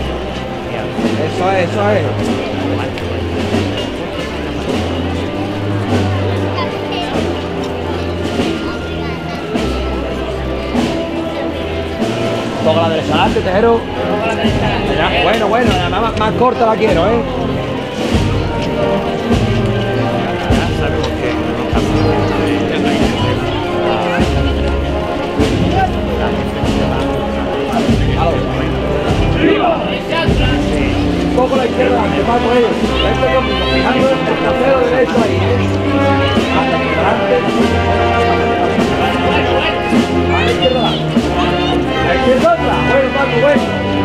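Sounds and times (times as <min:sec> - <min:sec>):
low brass holding long notes: 0:00.0 - 0:44.0
processional band playing slow march: 0:00.0 - 0:44.0
percussive beats: 0:24.2 - 0:31.4.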